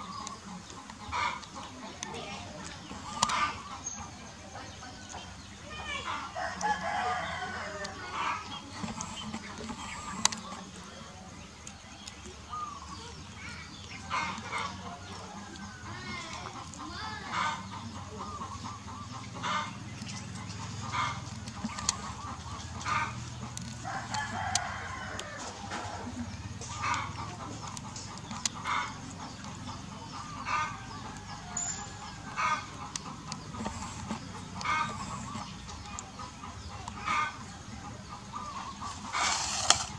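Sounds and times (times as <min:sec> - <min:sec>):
poultry calling: 0:00.0 - 0:11.4, 0:12.4 - 0:39.9.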